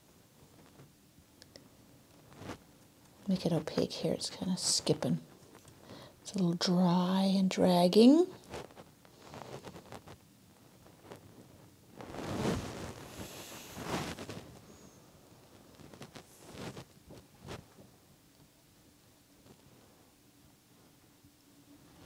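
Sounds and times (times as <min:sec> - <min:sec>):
brush dragging paint on canvas: 0:12.0 - 0:14.9.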